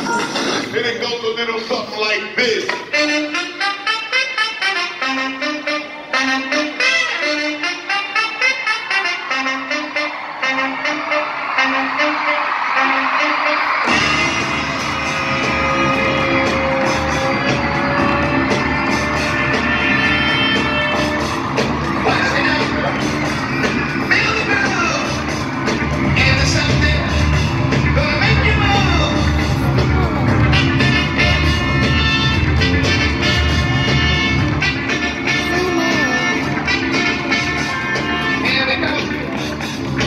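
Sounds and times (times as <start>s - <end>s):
live amplified music with singing: 0.0s - 11.6s, 12.4s - 40.0s.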